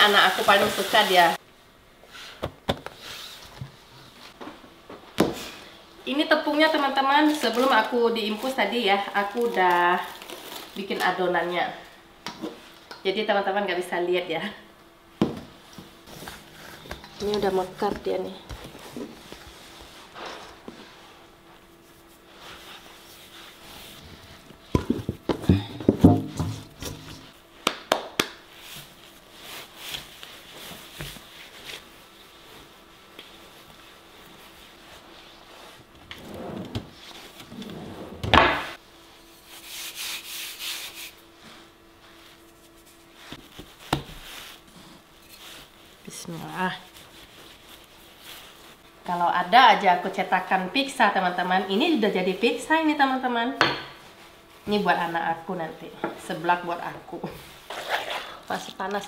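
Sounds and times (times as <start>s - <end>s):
dough being kneaded: 15.2s - 59.0s.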